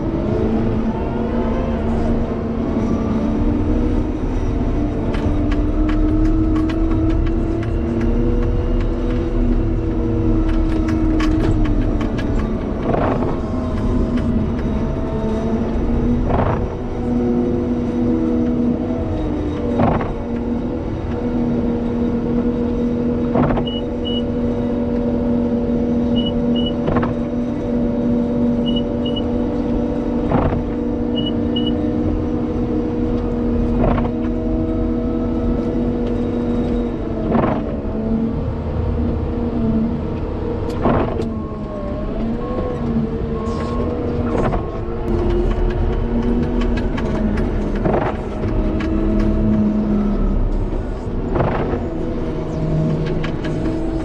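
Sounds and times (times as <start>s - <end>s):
diesel engine under load: 0.0s - 54.0s.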